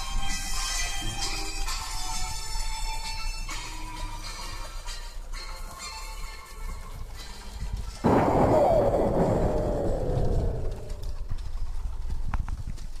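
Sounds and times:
loud burst of noise with falling tone: 8.0 - 11.4.

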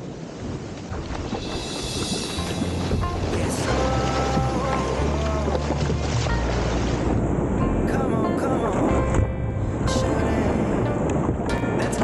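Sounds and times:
wind on microphone: 0.0 - 7.6
surf washing over kayak: 0.0 - 12.0
background music with bass: 2.0 - 12.0.

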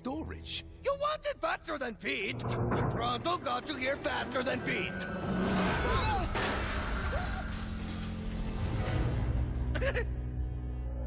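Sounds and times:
cart rushing rumble: 2.9 - 8.8.

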